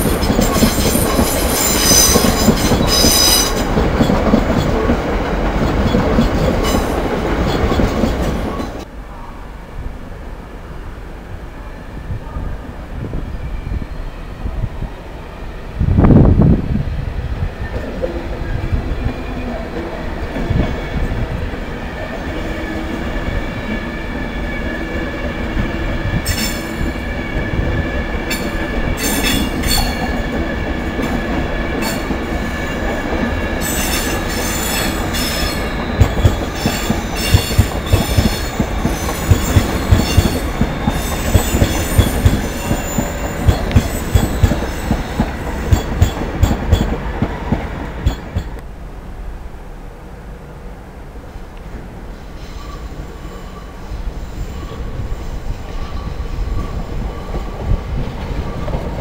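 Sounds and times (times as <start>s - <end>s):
wheel squeal: 0.0s - 3.6s, 33.6s - 46.8s
train rumble: 0.0s - 59.0s.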